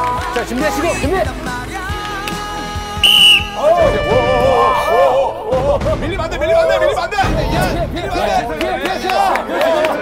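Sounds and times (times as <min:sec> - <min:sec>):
background music: 0:00.0 - 0:10.0
loud whistle blast: 0:03.0 - 0:05.3.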